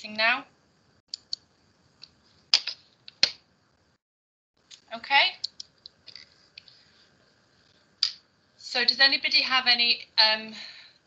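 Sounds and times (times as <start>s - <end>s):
person speaking: 4.8s - 6.8s.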